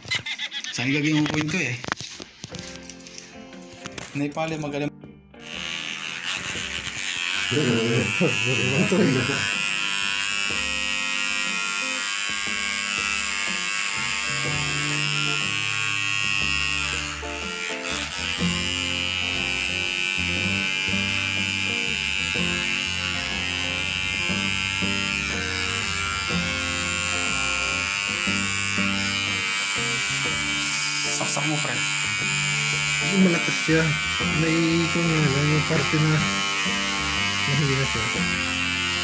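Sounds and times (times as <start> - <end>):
electric hair trimmer buzzing: 0.0 - 4.8, 5.4 - 39.0.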